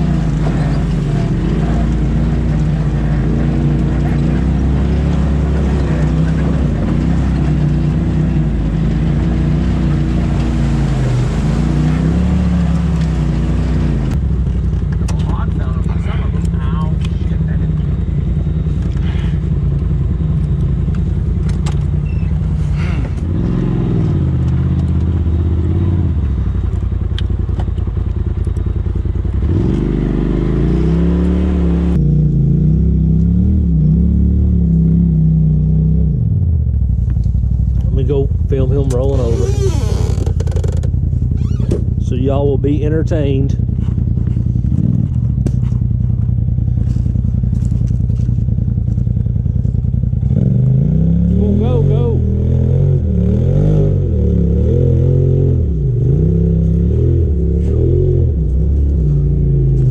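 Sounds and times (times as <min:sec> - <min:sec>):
off-road vehicle engines revving: 0:00.0 - 0:59.9.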